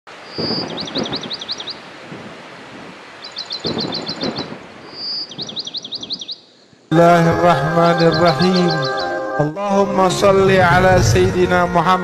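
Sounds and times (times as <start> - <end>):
songbird singing: 0.1 - 2.1, 3.1 - 11.8
low rumbles: 9.8 - 12.0.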